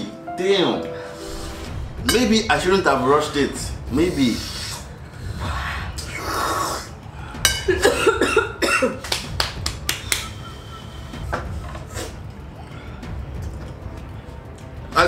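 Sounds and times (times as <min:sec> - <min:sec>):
person coughing: 0:07.6 - 0:09.0.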